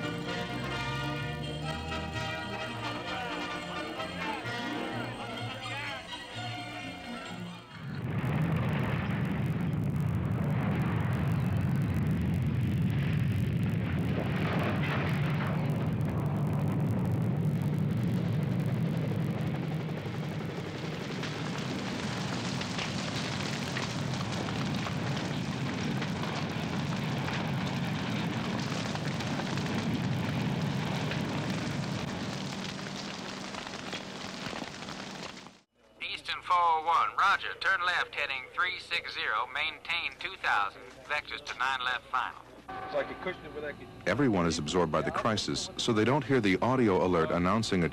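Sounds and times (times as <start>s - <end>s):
low rumbling with crackling: 7.7s - 35.7s.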